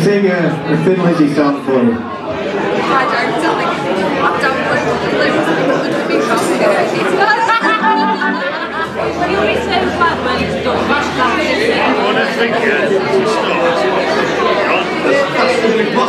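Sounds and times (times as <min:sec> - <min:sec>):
pub crowd chatter: 0:00.0 - 0:16.0.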